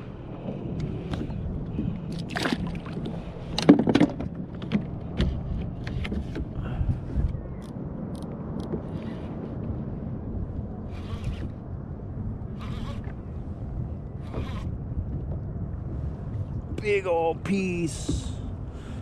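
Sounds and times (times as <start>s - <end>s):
water lapping at hull: 0.0s - 19.0s
wind: 0.0s - 19.0s.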